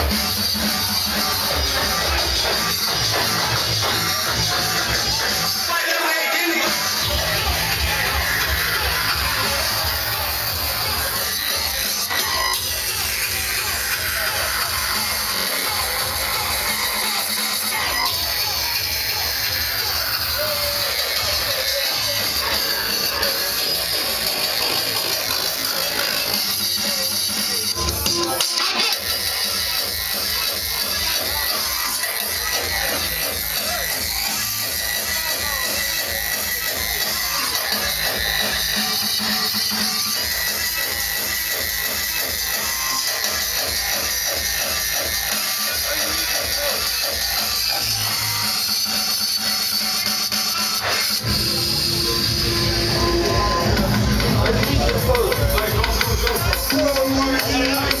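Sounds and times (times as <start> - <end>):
noisy electronic sounds: 0.0 - 58.0
fast kick drum: 51.3 - 58.0.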